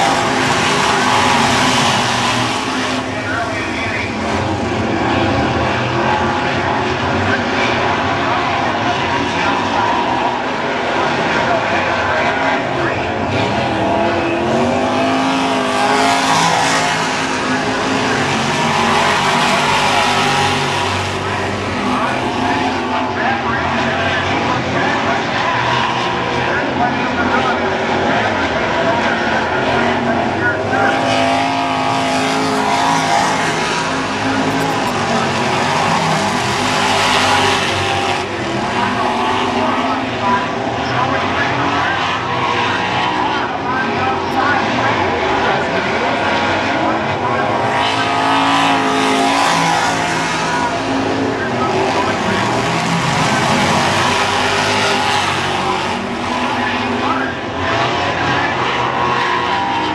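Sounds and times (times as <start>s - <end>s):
race car engines roaring: 0.0s - 59.9s.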